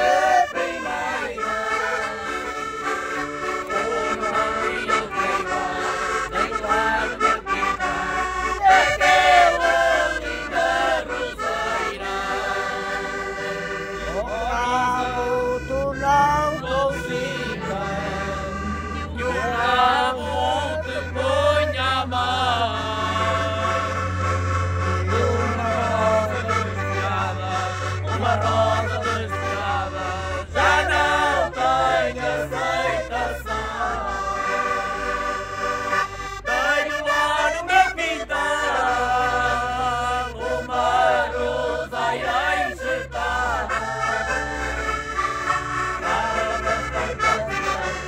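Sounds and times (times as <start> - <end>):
concertina: 0.0 - 48.0
person singing folk song: 0.0 - 48.0.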